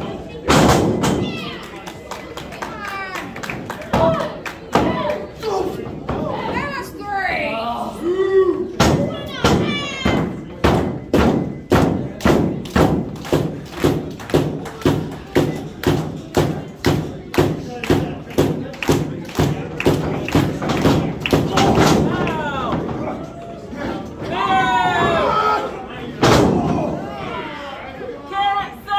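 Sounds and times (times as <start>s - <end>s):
voices shouting: 21.5s - 28.9s.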